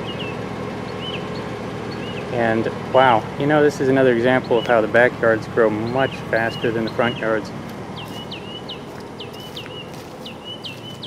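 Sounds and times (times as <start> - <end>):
outdoor background hum: 0.0 - 11.0
short high bird chirps: 8.0 - 11.0.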